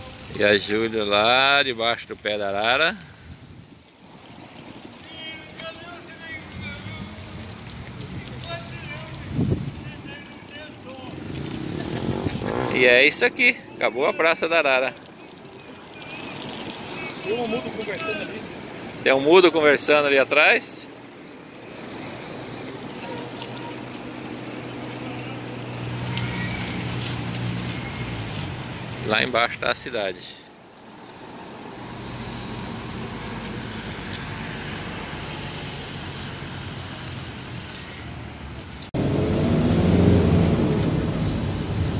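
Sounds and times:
vehicle engine humming: 4.3 - 19.0, 20.9 - 29.1, 30.6 - 41.9
wind buffeting microphone: 6.5 - 13.0
low rumble: 11.1 - 13.2.

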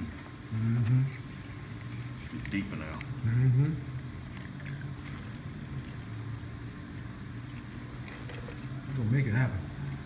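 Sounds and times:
dining room background hum: 0.0 - 10.0.

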